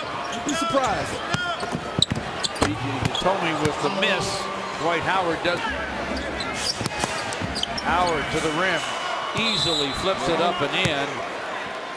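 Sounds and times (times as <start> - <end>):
shoe squeaks: 0.2 - 3.3, 6.1 - 8.6.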